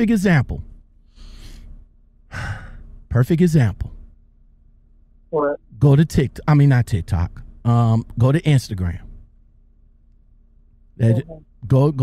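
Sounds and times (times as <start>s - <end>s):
person breathing into microphone: 1.1s - 2.9s.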